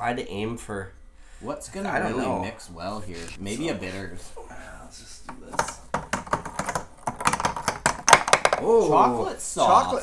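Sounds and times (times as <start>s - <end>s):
disc clattering off wooden pegs: 5.3s - 8.6s.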